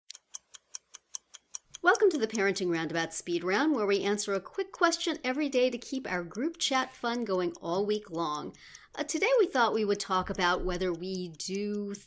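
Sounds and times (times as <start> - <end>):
rapid clock-like ticking: 0.1 - 12.0
person speaking: 1.8 - 12.0.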